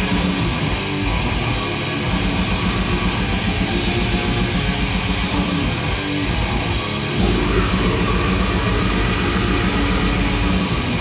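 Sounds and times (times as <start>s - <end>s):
death metal band playing live: 0.0s - 11.0s.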